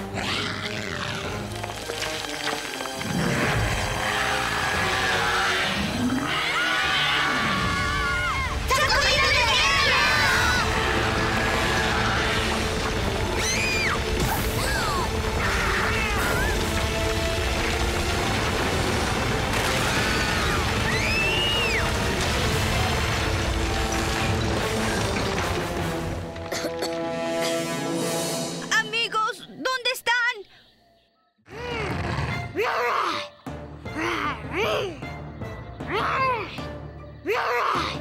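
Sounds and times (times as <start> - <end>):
dramatic background music: 0.0 - 29.6, 31.5 - 38.0.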